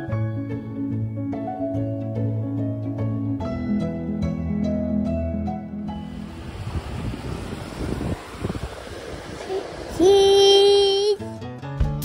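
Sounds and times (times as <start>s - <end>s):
waves and wind: 6.0s - 11.3s.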